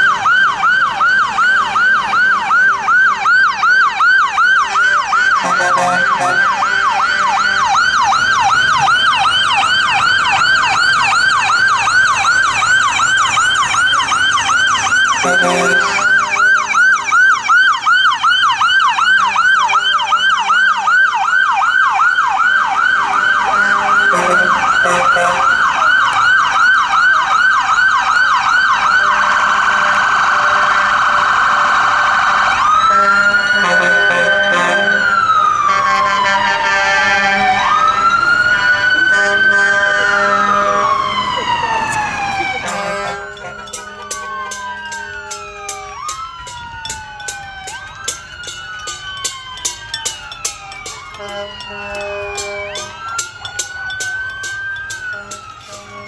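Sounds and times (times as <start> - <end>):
electronic emergency siren: 0.0 - 56.0.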